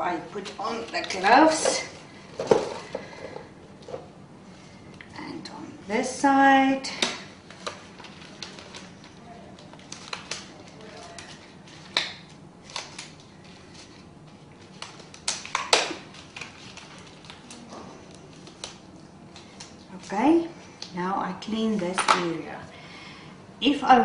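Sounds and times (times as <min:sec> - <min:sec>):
rubber gloves snapping and rustling: 0:07.0 - 0:20.1.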